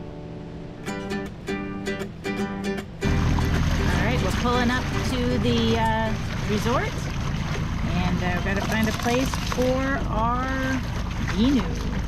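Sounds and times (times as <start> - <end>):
water rumble: 2.3 - 12.0
wind rumble: 2.7 - 12.0.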